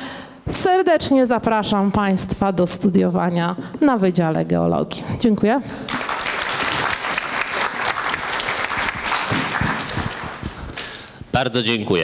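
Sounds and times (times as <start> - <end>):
audience applauding: 5.8 - 11.1.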